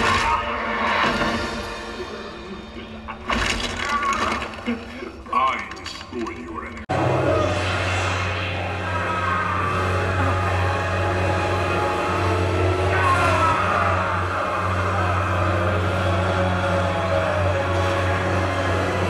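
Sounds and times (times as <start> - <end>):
film-score music: 0.0 - 19.0
steady low drone: 6.8 - 19.0.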